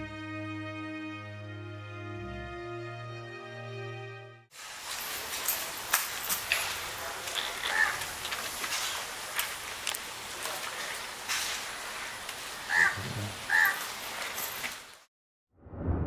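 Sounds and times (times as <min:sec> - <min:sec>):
steady outdoor hiss: 0:04.6 - 0:15.0
crow cawing: 0:07.4 - 0:08.1, 0:12.7 - 0:13.9.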